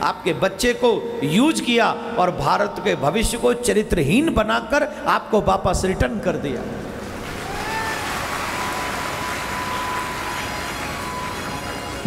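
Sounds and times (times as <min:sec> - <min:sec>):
audience applauding: 0:07.0 - 0:12.0.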